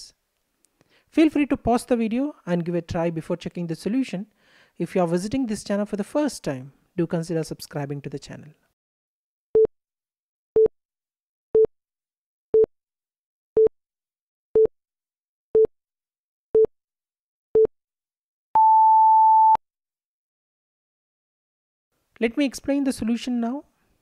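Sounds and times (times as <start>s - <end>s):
long higher timer beep: 18.6s - 19.6s.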